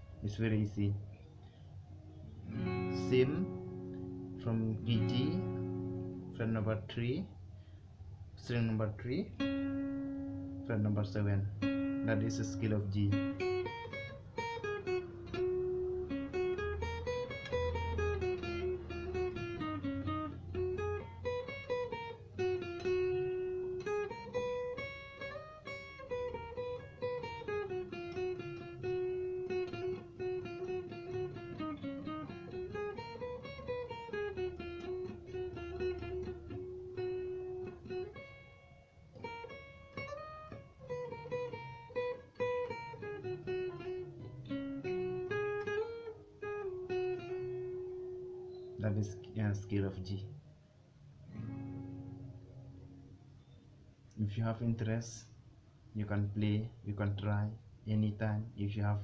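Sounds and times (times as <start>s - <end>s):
acoustic guitar playing a scale: 0.0s - 7.7s, 8.4s - 55.3s.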